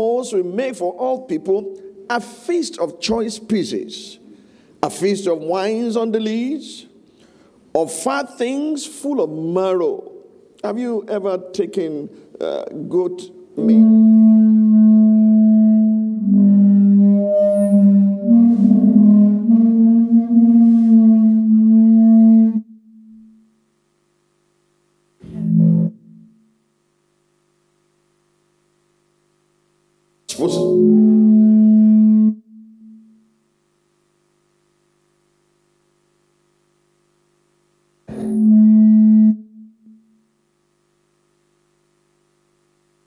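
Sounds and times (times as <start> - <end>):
faint steady hum: 0.0 - 43.0
held musical note: 13.6 - 22.6
short musical note: 13.6 - 23.1, 30.3 - 33.2.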